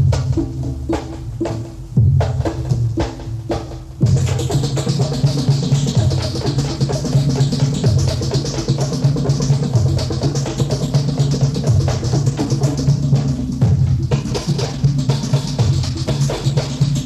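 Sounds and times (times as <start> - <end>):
drum-led dance music: 0.0 - 17.0.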